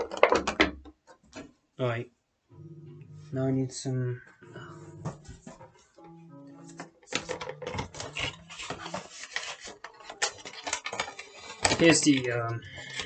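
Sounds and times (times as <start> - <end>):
handling noise rustles and clicks: 6.8 - 13.0.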